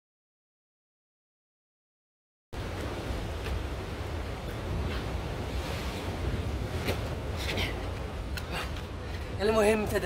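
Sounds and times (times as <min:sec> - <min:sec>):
sea surf: 0:02.6 - 0:10.0
wind blowing on microphone: 0:02.6 - 0:10.0.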